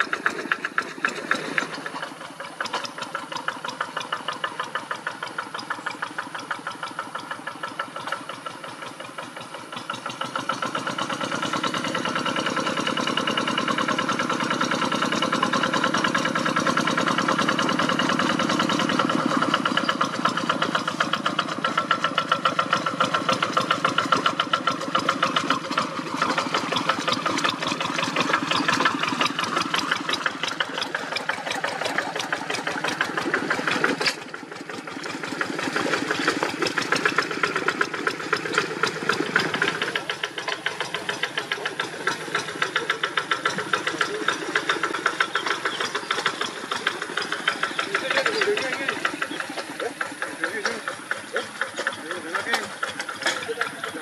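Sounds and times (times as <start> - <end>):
diesel hand tractor engine running: 0.0 - 54.0.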